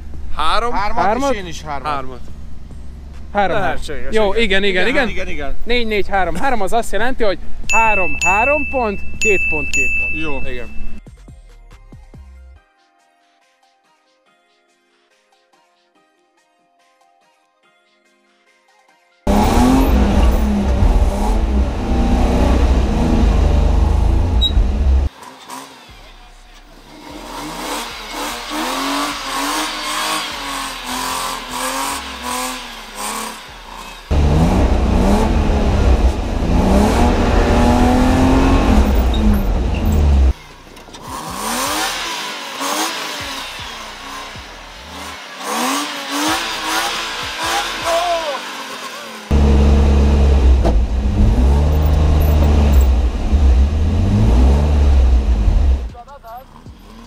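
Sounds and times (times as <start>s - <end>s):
heavy steady low rumble: 19.3s - 25.1s, 34.1s - 40.3s, 49.3s - 55.9s
car engine revving: 19.3s - 57.0s.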